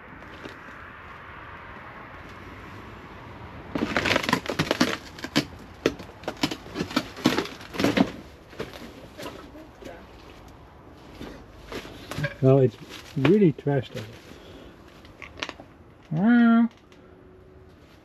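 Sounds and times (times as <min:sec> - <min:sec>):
plants crackling and snapping: 0:03.6 - 0:10.6, 0:11.2 - 0:17.1
footsteps through undergrowth: 0:06.5 - 0:15.2.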